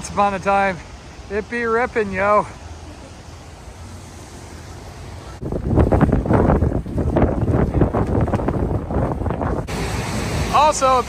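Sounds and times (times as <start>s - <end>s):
river rushing: 0.0s - 5.5s, 9.6s - 11.0s
wind buffeting microphone: 3.8s - 10.6s.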